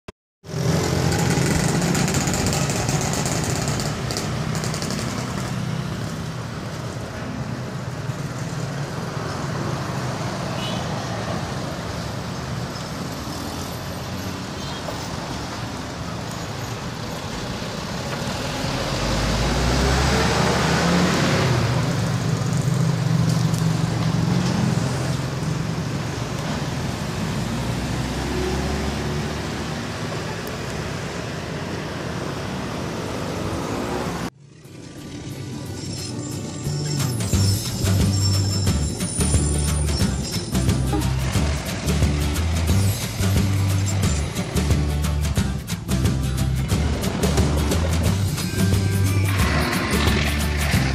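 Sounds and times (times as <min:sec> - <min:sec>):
cars passing: 0:00.5 - 0:50.9
motorcycles passing: 0:00.5 - 0:50.9.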